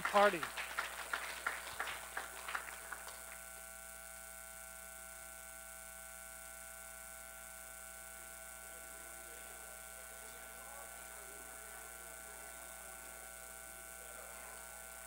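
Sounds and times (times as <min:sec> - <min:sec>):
low electrical hum: 0:00.0 - 0:15.0
faint steady tones: 0:01.3 - 0:15.0.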